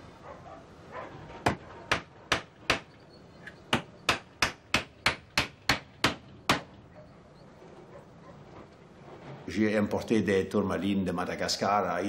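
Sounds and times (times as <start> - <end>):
hammer striking wooden crate: 1.4 - 3.0, 3.7 - 6.8.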